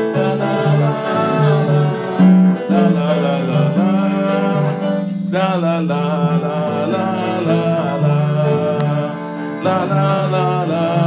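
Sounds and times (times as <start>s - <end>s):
acoustic guitar: 0.0s - 11.0s
person singing: 0.0s - 11.0s.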